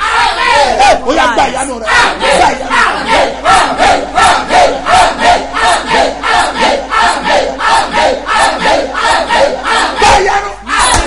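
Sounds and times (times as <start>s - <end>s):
man shouting prayer: 0.7s - 3.0s, 10.0s - 11.0s.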